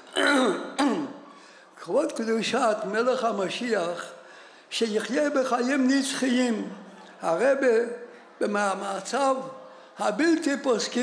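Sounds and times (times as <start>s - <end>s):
man clearing his throat: 0.0s - 1.3s
man speaking: 0.2s - 11.0s.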